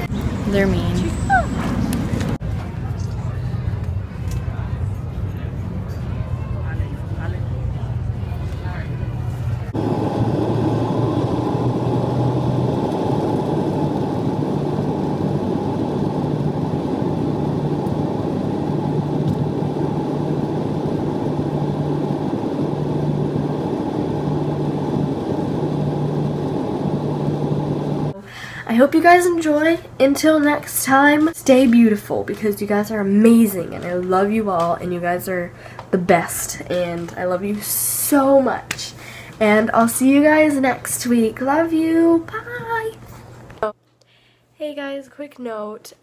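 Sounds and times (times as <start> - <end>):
airliner cabin engine noise: 0.0 - 28.2
low engine hum: 0.0 - 28.2.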